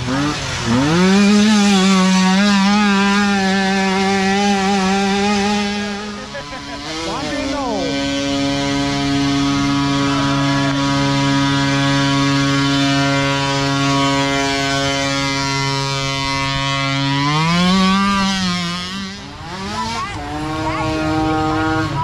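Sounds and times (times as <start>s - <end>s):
small engine revving: 0.0s - 22.0s.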